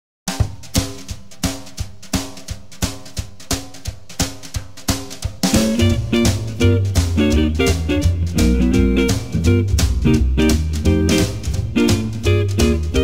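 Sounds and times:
drum kit beat: 0:00.3 - 0:13.0
pitched instruments and bass: 0:05.4 - 0:13.0.

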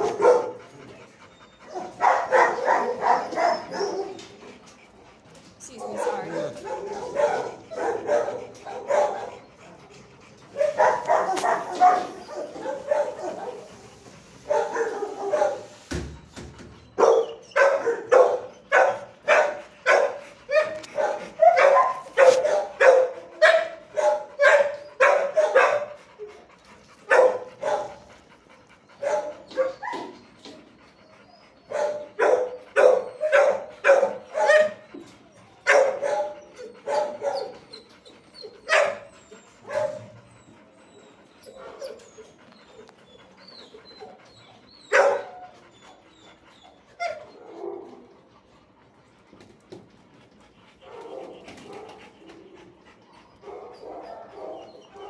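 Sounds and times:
dogs barking in echoing room: 0:00.0 - 0:55.0.

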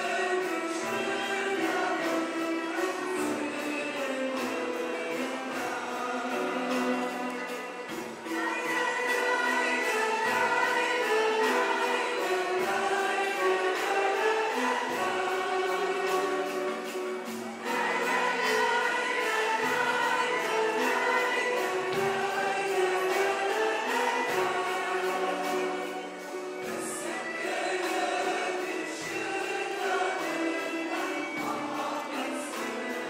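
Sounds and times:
mixed choir singing: 0:00.0 - 0:33.0
traditional instrumental ensemble: 0:00.0 - 0:33.0.

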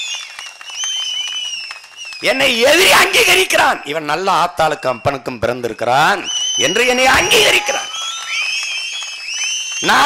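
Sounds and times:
high wavering whistles: 0:00.0 - 0:02.4, 0:04.8 - 0:10.0
crowd clapping: 0:00.0 - 0:04.2, 0:06.3 - 0:10.0.

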